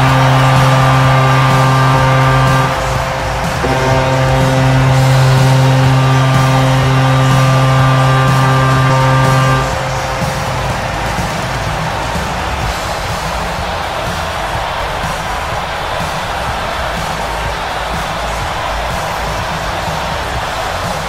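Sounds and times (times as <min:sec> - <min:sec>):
air horn blasts: 0:00.0 - 0:12.3.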